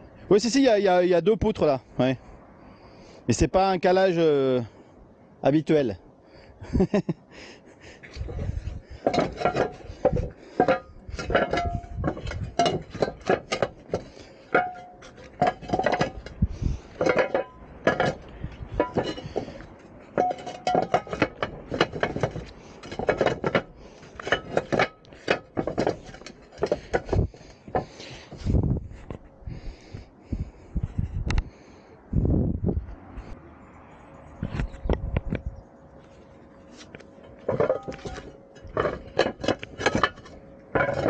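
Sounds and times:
ceramic roof tiles clinking: 0:07.8 - 0:29.1, 0:36.1 - 0:41.0.

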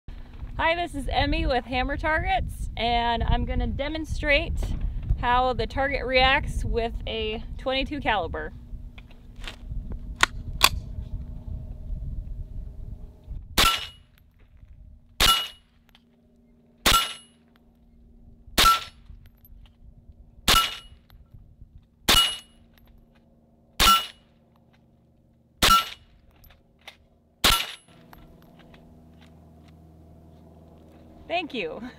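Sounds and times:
bullet pinging steel target: 0:13.6 - 0:14.1, 0:15.2 - 0:15.7, 0:16.8 - 0:17.4, 0:18.6 - 0:19.0, 0:20.5 - 0:21.1, 0:22.1 - 0:22.7, 0:23.8 - 0:24.3, 0:25.6 - 0:26.1, 0:27.4 - 0:28.6
rifle shots: 0:16.8 - 0:17.2, 0:27.4 - 0:27.9.

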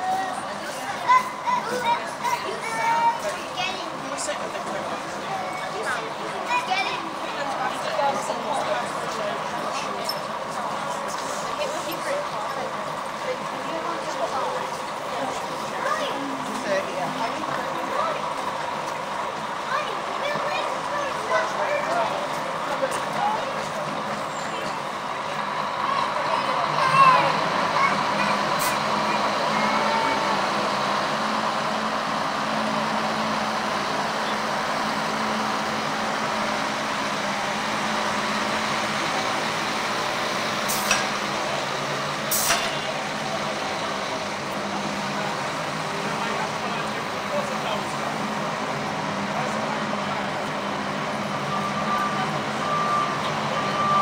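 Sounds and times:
lorry engine running: 0:00.0 - 0:54.0
passers-by talking: 0:00.0 - 0:54.0
traffic: 0:00.0 - 0:54.0
vehicle reversing alarm beeping: 0:51.0 - 0:54.0.

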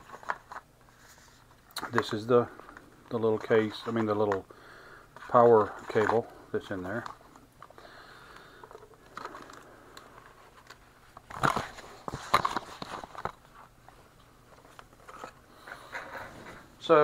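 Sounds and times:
soft rustling: 0:00.0 - 0:04.4.

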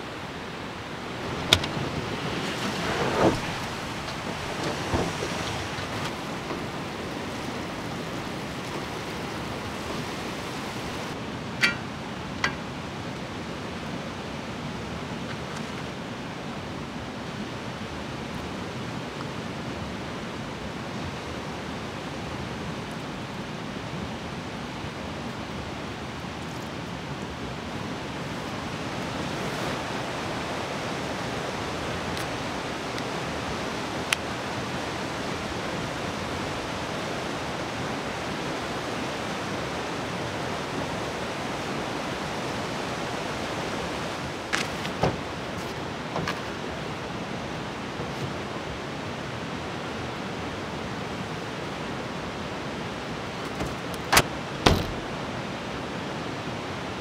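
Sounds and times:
rushing river water: 0:00.0 - 0:57.0.

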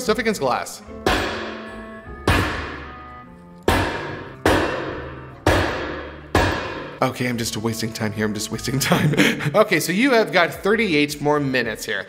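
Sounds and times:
axe striking glass: 0:01.1 - 0:01.7, 0:02.3 - 0:02.9, 0:03.7 - 0:07.0.

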